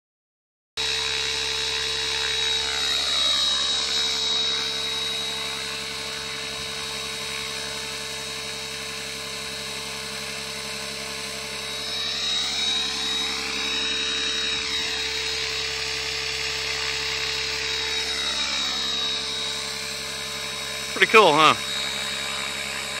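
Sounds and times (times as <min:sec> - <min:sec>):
model helicopter whine: 0:00.8 - 0:23.0
rotor hum: 0:00.8 - 0:23.0.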